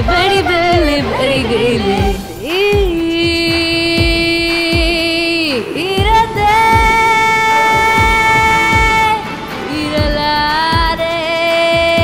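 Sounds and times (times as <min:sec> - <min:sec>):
low drum beat: 0:00.0 - 0:11.1
woman singing: 0:00.0 - 0:12.0.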